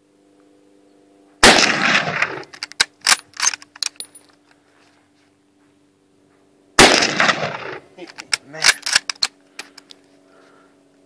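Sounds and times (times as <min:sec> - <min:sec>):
rifle shots: 0:01.4 - 0:03.5, 0:06.8 - 0:07.8
rifle bolt metallic clacks: 0:02.2 - 0:04.3, 0:07.6 - 0:10.0.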